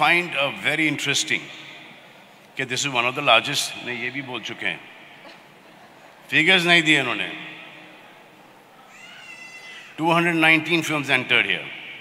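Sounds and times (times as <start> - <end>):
faint hall room tone: 0.0 - 12.0
high-pitched call from audience: 8.8 - 10.0.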